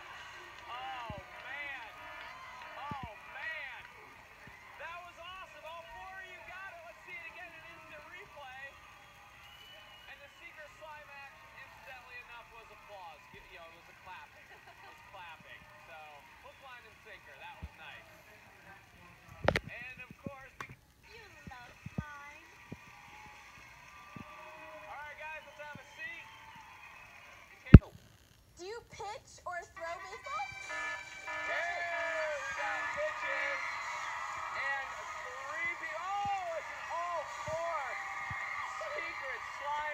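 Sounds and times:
voices: 0:28.6 - 0:39.9
background music: 0:29.8 - 0:39.9.

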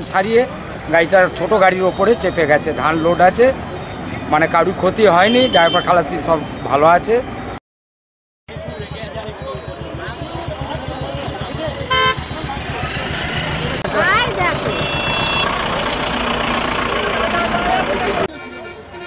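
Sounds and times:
horn toots: 0:08.5 - 0:15.7
crowd voices: 0:08.5 - 0:19.0
vehicle engine rumbling: 0:08.5 - 0:19.0.

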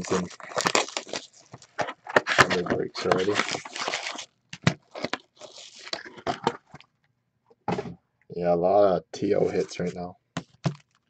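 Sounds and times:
plastic packaging crinkling: 0:00.0 - 0:06.9.

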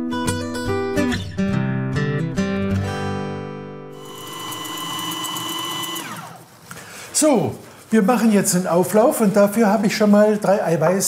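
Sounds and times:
kitchen appliance motor whining: 0:04.0 - 0:06.6.

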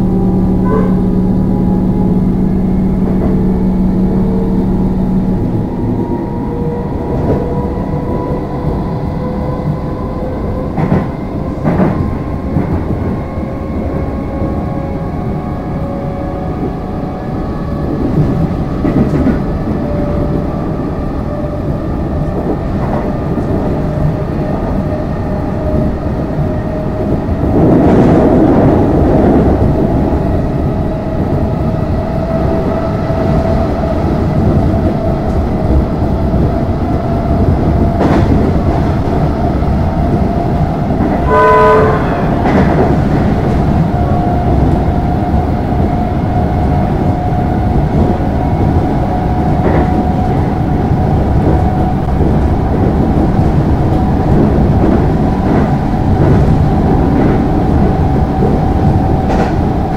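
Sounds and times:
train motor whine: 0:00.0 - 0:07.8
train wheels rumbling on track: 0:00.0 - 0:59.9
clacks over rail joints: 0:10.6 - 0:13.0, 0:51.0 - 0:59.9.

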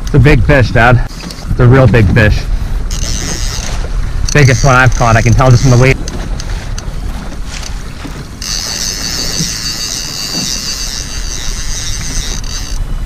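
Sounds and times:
boat motor rumble: 0:00.0 - 0:13.0
wind on microphone: 0:00.0 - 0:13.0
fishing reel whirring: 0:02.7 - 0:07.1, 0:08.1 - 0:13.0.

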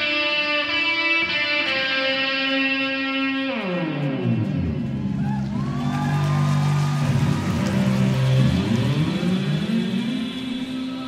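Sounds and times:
electric guitar through effects: 0:00.0 - 0:11.0.

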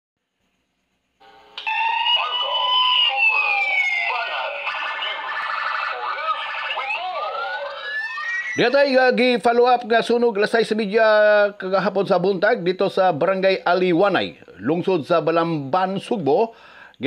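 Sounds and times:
siren sweeping in pitch: 0:01.2 - 0:08.7.

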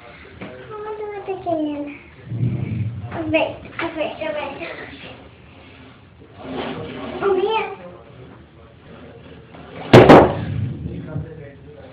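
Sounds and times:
sharp loud knocks: 0:09.9 - 0:10.8.

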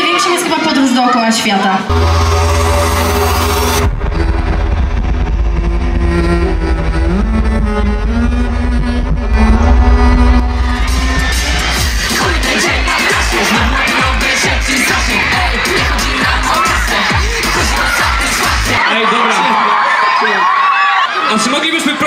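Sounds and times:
crowd cheering: 0:00.0 - 0:07.1, 0:09.2 - 0:22.0
bowed double bass: 0:01.9 - 0:12.1
deep bass drone: 0:01.9 - 0:13.8
low thudding beat: 0:01.9 - 0:18.8.

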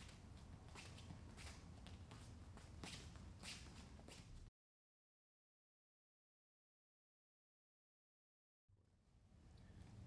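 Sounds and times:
bare feet shuffling on mats: 0:00.0 - 0:04.5
low room hum: 0:00.0 - 0:04.5, 0:08.7 - 0:10.0.

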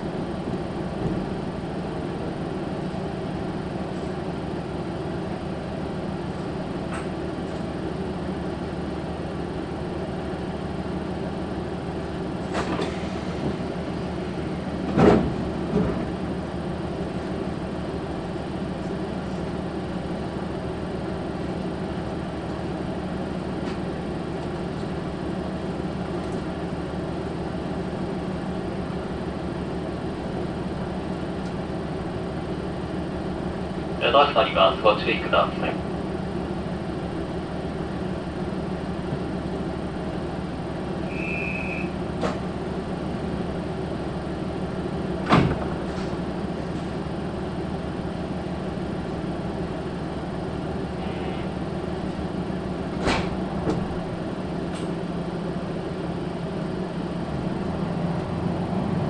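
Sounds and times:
diesel railcar engine idling: 0:00.0 - 0:59.0.

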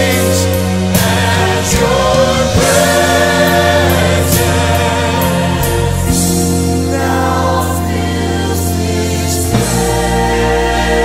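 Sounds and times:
choir singing held notes: 0:00.0 - 0:11.0
instrumental accompaniment: 0:00.0 - 0:11.0.

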